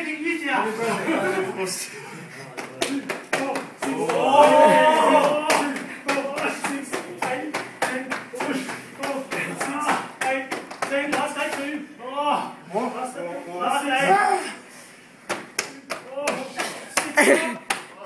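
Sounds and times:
people's voices: 0.0 - 12.6.

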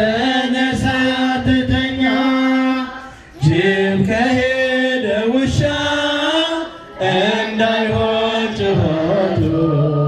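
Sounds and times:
choir chanting a hymn: 0.0 - 10.0.

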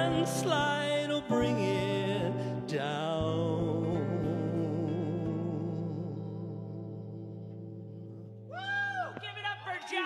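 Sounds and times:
electric guitar chord ringing: 0.0 - 8.5.

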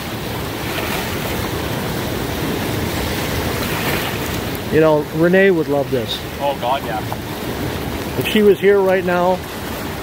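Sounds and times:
river rapids rushing: 0.0 - 10.0
wind buffeting microphone: 0.0 - 10.0.

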